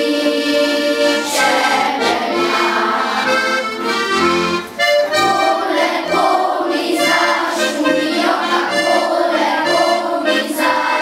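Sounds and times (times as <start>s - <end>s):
accordion playing folk tune: 0.0s - 11.0s.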